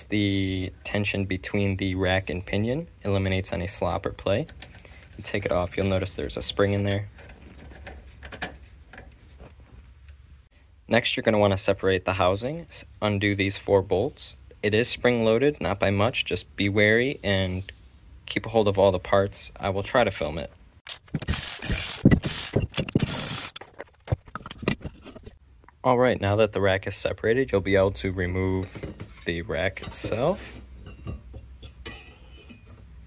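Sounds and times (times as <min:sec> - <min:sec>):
ratchet ratcheting: 0:20.9 - 0:23.9
small metal parts clicking: 0:20.9 - 0:24.8.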